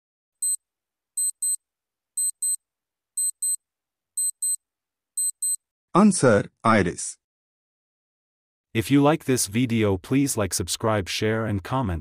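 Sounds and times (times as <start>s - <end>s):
electronic clock ticks: 1.2s - 1.6s, 2.2s - 2.6s, 3.2s - 3.6s, 4.2s - 4.6s, 5.2s - 5.6s.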